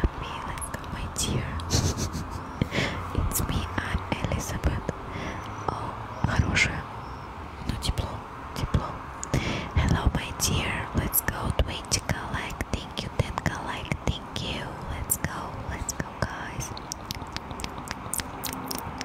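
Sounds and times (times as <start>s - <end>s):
woman whispering: 0.0s - 1.7s, 2.6s - 6.9s, 7.6s - 19.0s
mouth clicks and lip smacks: 9.2s - 9.4s, 15.9s - 19.0s.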